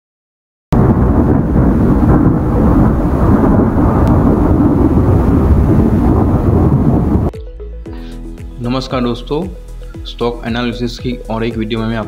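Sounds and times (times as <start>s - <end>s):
loud thunder-like rumble: 0.8s - 7.3s.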